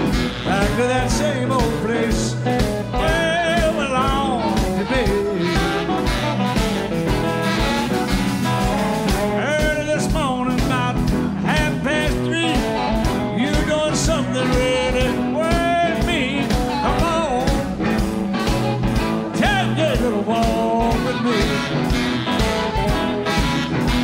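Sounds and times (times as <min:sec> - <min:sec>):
harmonica wailing: 0:00.0 - 0:10.5, 0:11.5 - 0:24.0
bass: 0:00.0 - 0:24.0
electric guitars: 0:00.0 - 0:24.0
steady drum beat: 0:00.0 - 0:24.0.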